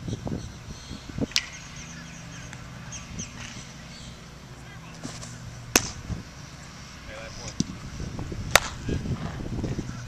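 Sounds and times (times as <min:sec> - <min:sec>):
baseball popping into mitt: 0:05.0 - 0:06.1, 0:08.5 - 0:08.8
sharp leather glove pop: 0:05.7 - 0:06.0, 0:08.5 - 0:08.8.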